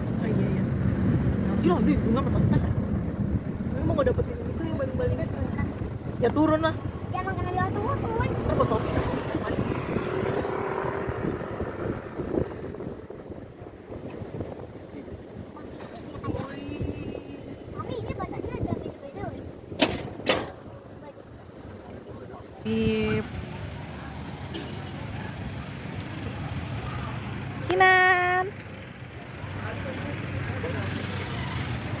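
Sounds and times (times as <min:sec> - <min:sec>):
low rumble inside moving car: 0:00.0 - 0:20.7
wind buffeting microphone: 0:00.0 - 0:23.7.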